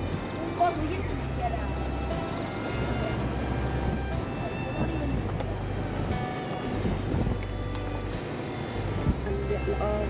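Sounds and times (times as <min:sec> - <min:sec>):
car driving rumble: 0:00.0 - 0:10.0
music playing: 0:00.0 - 0:10.0.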